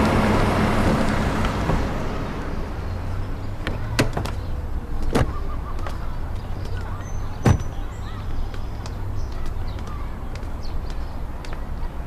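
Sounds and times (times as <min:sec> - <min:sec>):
car rumbling on city street: 0:00.0 - 0:12.0.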